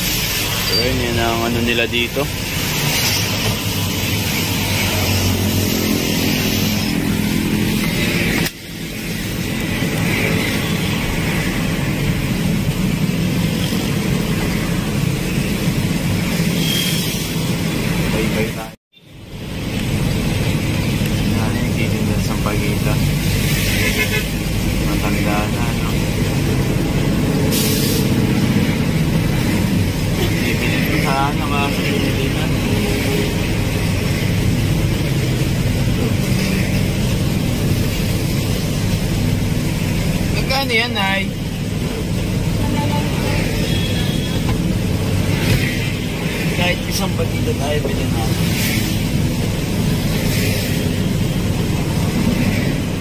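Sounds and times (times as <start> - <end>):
idling traffic rumble: 0.0 - 53.0
short hiss: 27.5 - 28.2.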